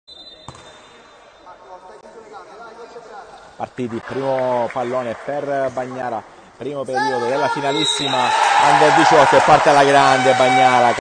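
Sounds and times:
basketball bouncing on court: 0.5 - 0.8.

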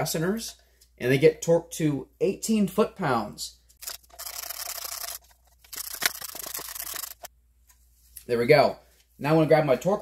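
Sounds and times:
ratchet wrench clicking: 3.8 - 7.3.

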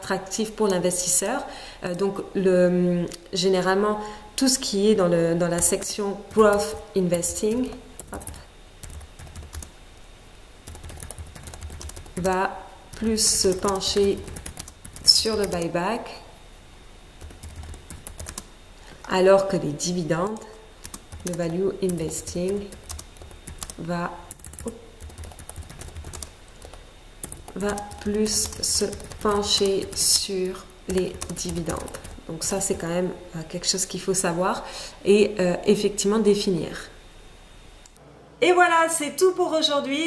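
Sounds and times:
keyboard typing clicks: 10.6 - 15.7, 17.2 - 18.5, 20.2 - 30.0, 30.9 - 32.2.

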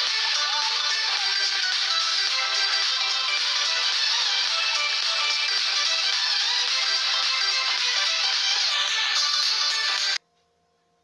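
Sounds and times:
loud music: 0.0 - 10.2.

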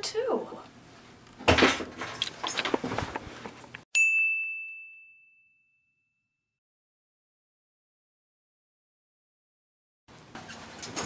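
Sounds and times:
high bell ding: 3.9 - 6.5.

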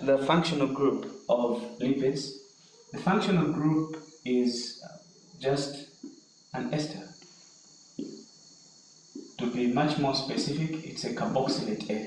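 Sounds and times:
high-pitched whine: 0.0 - 7.3, 9.2 - 12.0.

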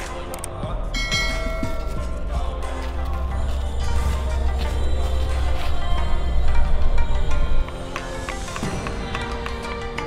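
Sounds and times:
background music: 0.0 - 10.0
bell-like chime: 1.0 - 2.0.

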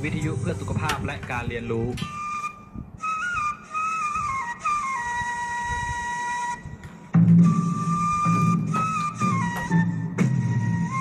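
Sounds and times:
flute melody: 1.9 - 11.0.

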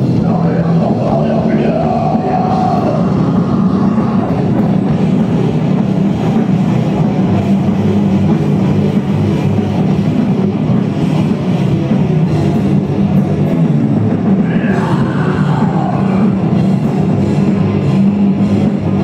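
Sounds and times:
bass guitar: 0.0 - 19.0
distorted electric guitars: 0.0 - 19.0
drum kit: 0.0 - 19.0.

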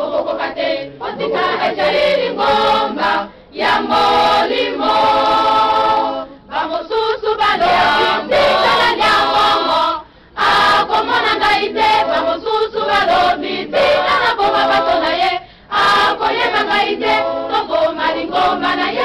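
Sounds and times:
choir singing religious song: 0.0 - 19.0.

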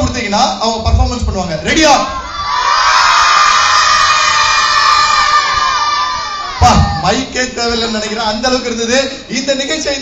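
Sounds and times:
crowd shouting and cheering: 1.7 - 7.9.

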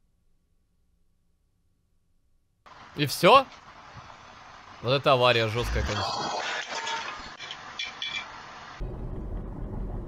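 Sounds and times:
clinks of debris: 6.6 - 8.3.

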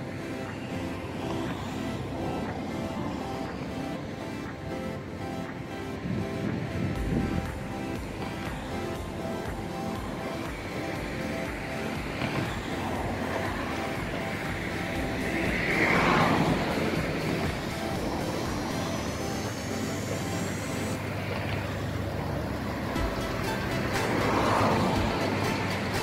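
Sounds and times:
background music: 0.0 - 26.0
diesel train running slowly: 0.0 - 26.0.

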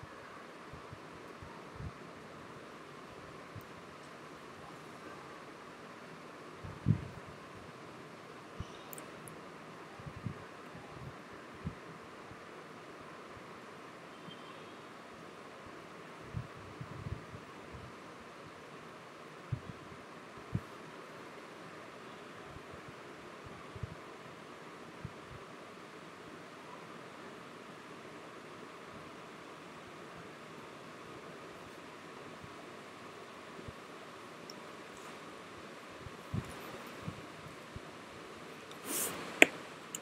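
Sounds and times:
microphone hiss: 0.0 - 40.0.

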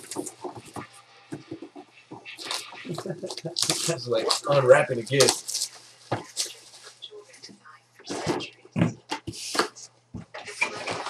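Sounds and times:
wrapping crinkling and rustling: 2.3 - 7.1.

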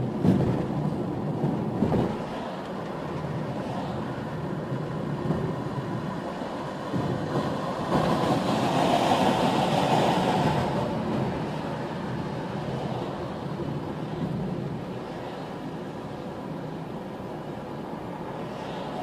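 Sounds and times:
car road and engine rumble: 0.0 - 19.0.

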